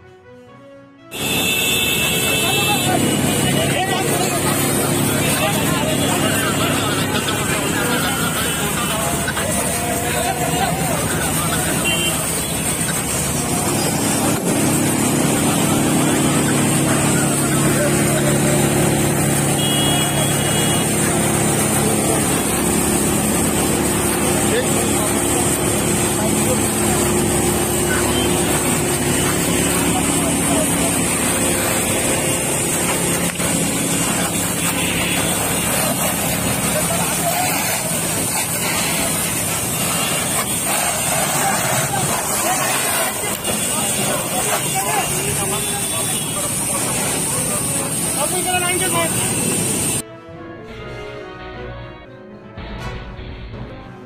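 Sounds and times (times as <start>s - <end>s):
water spraying from fire hoses: 1.1s - 50.0s
engine hum: 1.2s - 44.7s
indistinct voices: 2.1s - 50.0s.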